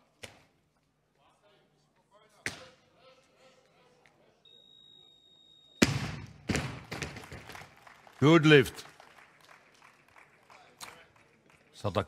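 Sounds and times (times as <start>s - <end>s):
steady high beep: 4.5s - 5.8s.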